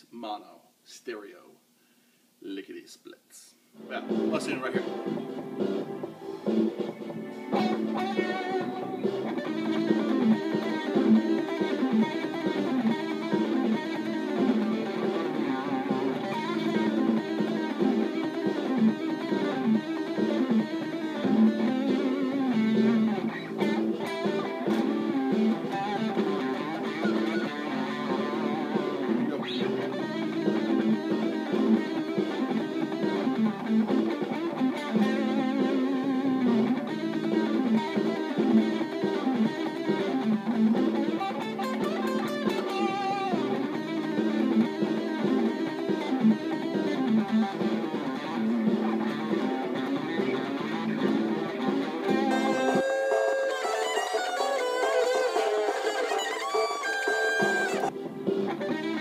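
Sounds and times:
rhythm backing track: 0:03.7 - 0:59.0
electric guitar lead: 0:03.8 - 0:59.0.

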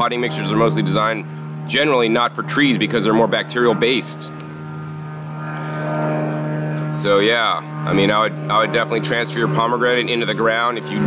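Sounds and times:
steady engine drone: 0:00.0 - 0:11.0.

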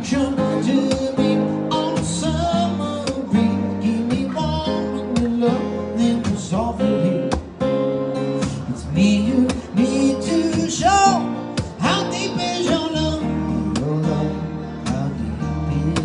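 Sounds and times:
man singing: 0:00.0 - 0:07.5, 0:08.2 - 0:16.0
acoustic guitar strumming chords: 0:00.0 - 0:16.0.

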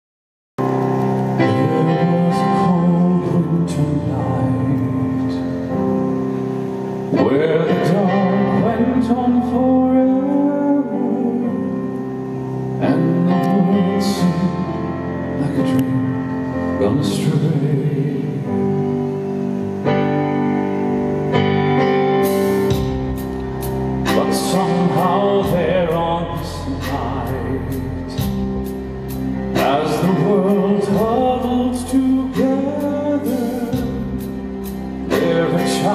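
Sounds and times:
band holding instrumental chord: 0:00.6 - 0:35.9
orchestral rock accompaniment: 0:00.6 - 0:35.9
man singing: 0:01.4 - 0:05.7, 0:07.1 - 0:12.0, 0:12.8 - 0:18.7, 0:24.0 - 0:28.5, 0:29.5 - 0:34.4, 0:35.0 - 0:35.9
man singing long note: 0:12.8 - 0:18.6, 0:35.1 - 0:35.9.

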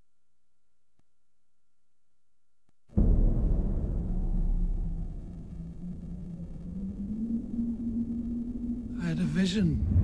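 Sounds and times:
deep rumble: 0:02.9 - 0:10.0
held low drone tone: 0:03.0 - 0:10.0.

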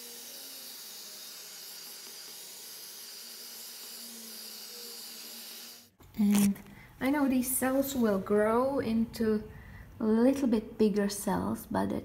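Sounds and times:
heat gun blowing air: 0:00.0 - 0:06.5.

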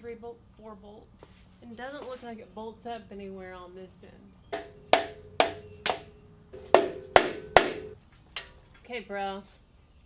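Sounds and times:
sharp metallic knocks: 0:04.5 - 0:08.0.

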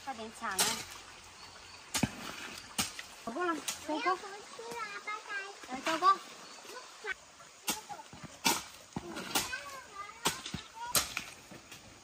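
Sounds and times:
hoe chopping sandy soil: 0:07.7 - 0:11.4.

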